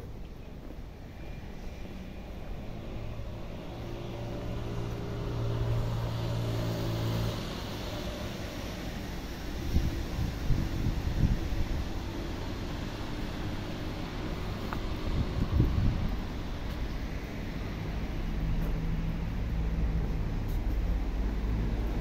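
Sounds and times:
passing vehicle engine hum: 0.1 - 22.0
wind buffeting microphone: 9.4 - 13.0, 13.6 - 17.1.

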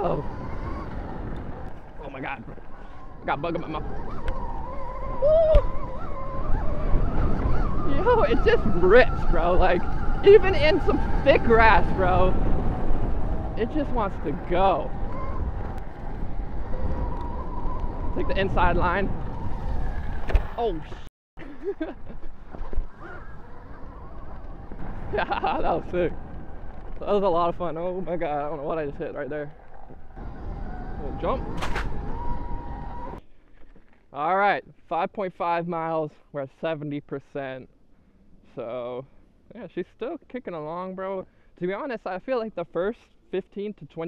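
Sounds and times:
rising and falling tone: 0.0 - 21.1, 21.9 - 33.2
wind rumbling on microphone: 0.0 - 33.9.

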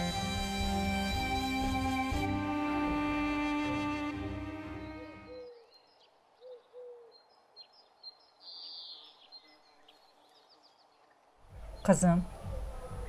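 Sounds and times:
bowed-string music: 0.0 - 5.3
small birds chirping: 4.5 - 13.0.

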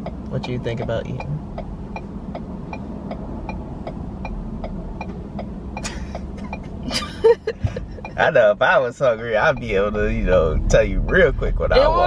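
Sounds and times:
car cabin engine hum: 0.0 - 12.0
turn signal ticking: 0.0 - 12.0.

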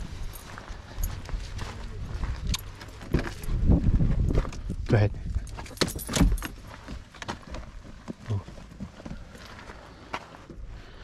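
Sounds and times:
footsteps on gravel: 0.0 - 11.0
keys jangling: 0.2 - 1.3, 5.4 - 6.9.

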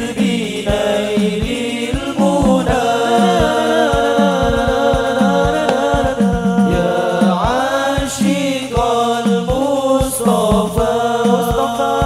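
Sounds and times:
frame drums beating: 0.0 - 12.0
male group singing in unison: 0.0 - 12.0.

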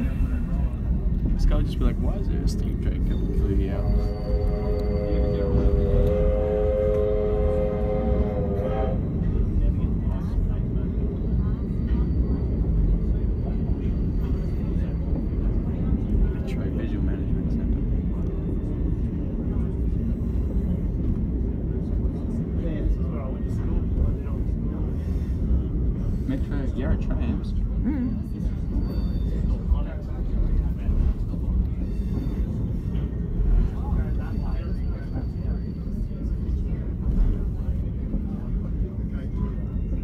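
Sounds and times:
train rumbling on track: 0.0 - 40.0
locomotive whistle chord: 3.3 - 9.2.

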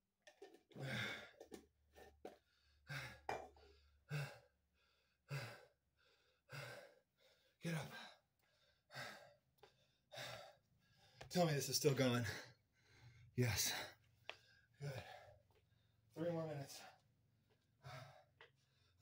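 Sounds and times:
man breathing heavily: 0.8 - 1.6, 2.3 - 11.3, 12.0 - 19.0.

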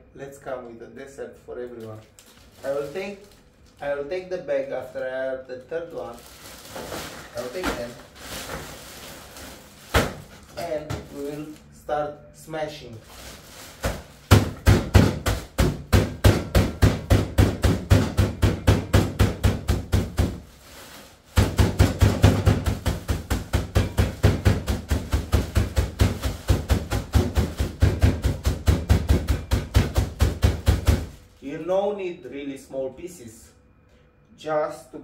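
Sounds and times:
fist pounding biscuits in bag: 9.8 - 11.1, 13.8 - 20.5, 21.3 - 31.2.

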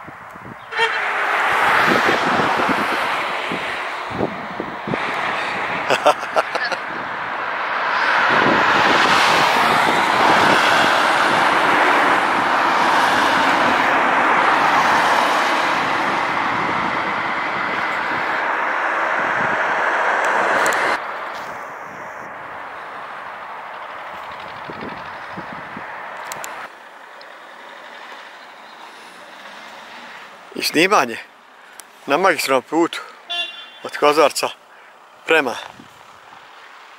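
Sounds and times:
faint traffic hum: 0.0 - 36.9
vehicle passing by: 0.8 - 36.9.

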